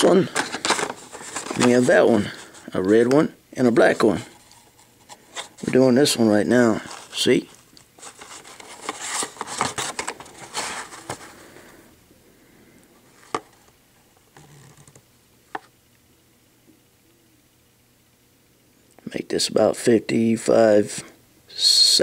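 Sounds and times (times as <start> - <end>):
plastic packaging rubbing and scraping: 0.0 - 2.7, 3.9 - 5.8, 6.6 - 11.5.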